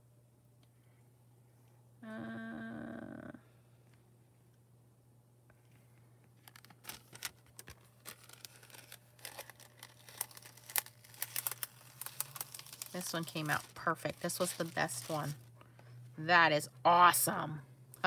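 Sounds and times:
low steady hum: 0.0s - 18.0s
metallic foil crinkling: 6.4s - 15.5s.

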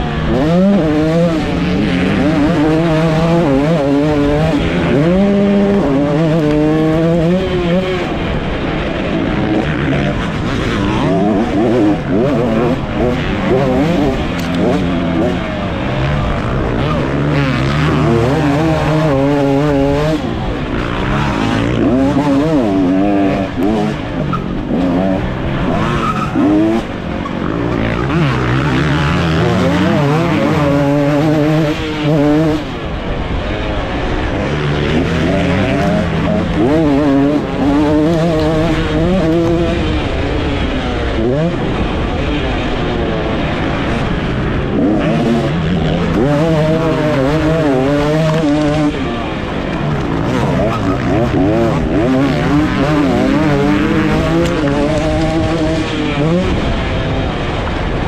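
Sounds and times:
motocross engine revving: 0.0s - 58.0s.

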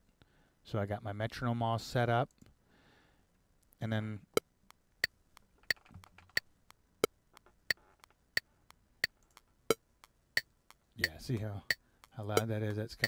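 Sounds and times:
metronome clicks: 7.4s - 12.8s.

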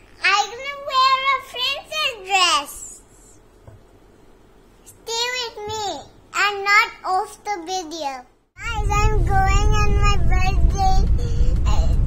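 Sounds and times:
car interior rumble: 8.6s - 12.0s
girl singing in a high voice: 8.6s - 12.0s.

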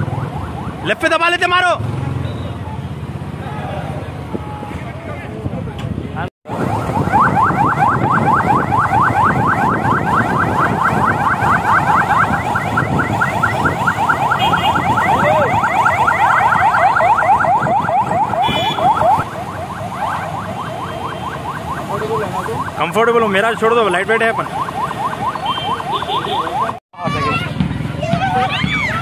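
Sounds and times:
traffic and engine noise: 0.0s - 29.0s
electronic siren sweeps: 6.5s - 23.0s.

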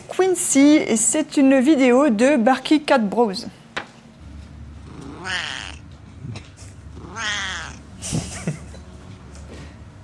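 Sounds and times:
cat meowing: 4.9s - 5.9s, 7.0s - 7.9s.

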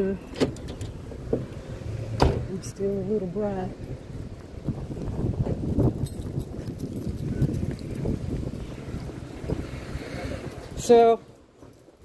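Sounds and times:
street traffic rumble: 0.0s - 12.0s
vehicle door clicking open: 0.3s - 1.5s.

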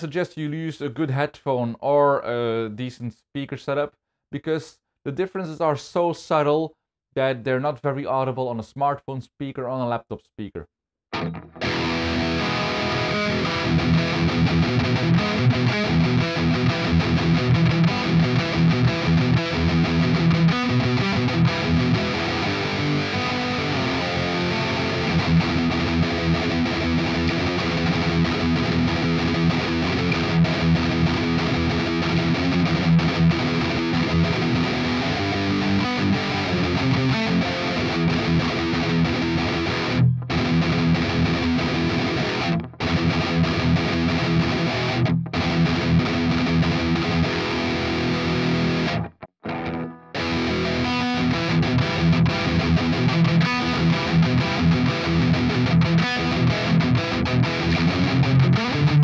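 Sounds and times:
distorted electric guitar metal riff: 11.2s - 59.0s.

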